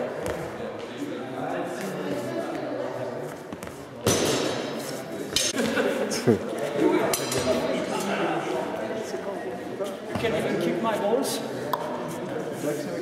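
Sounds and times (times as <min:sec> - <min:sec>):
crowd talking in echoing hall: 0:00.0 - 0:13.0.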